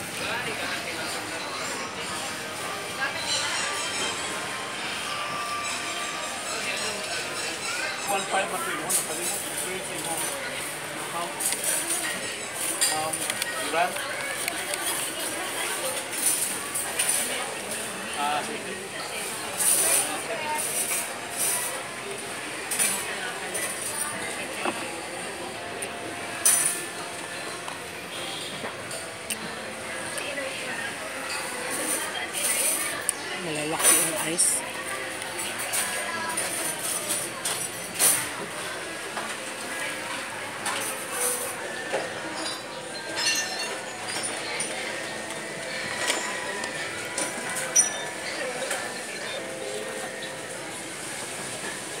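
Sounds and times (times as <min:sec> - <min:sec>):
background chatter: 0:00.0 - 0:52.0
utensils and dishes clinking: 0:00.1 - 0:52.0.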